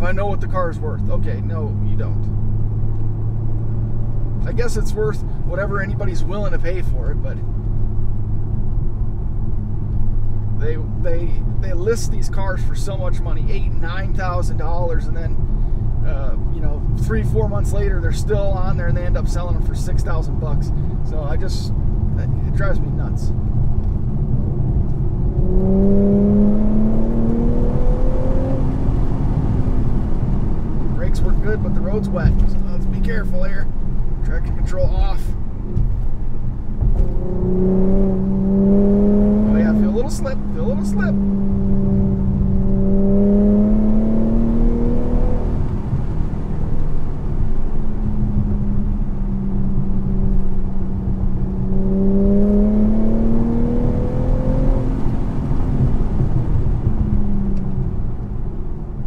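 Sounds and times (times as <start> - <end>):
car engine accelerating: 0.0 - 59.0
low road rumble: 0.0 - 59.0.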